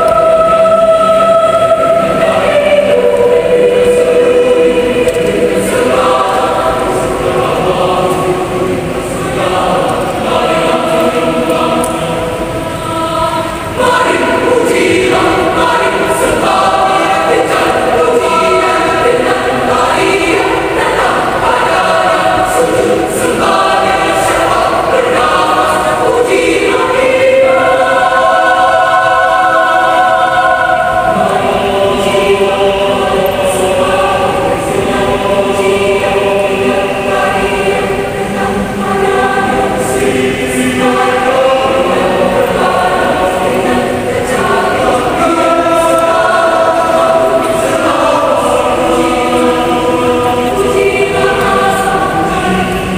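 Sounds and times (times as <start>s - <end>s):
choir singing: 0.0s - 52.9s.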